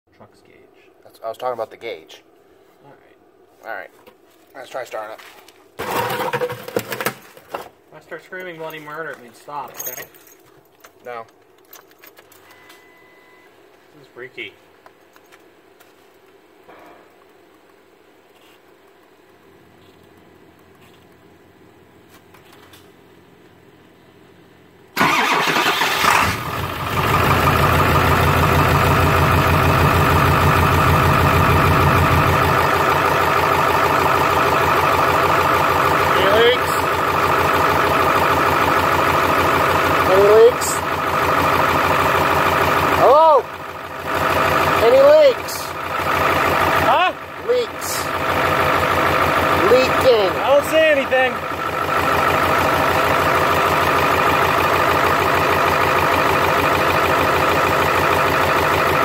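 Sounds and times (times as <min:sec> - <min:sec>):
diesel engine cranking and idling: 0:24.2 - 0:59.0.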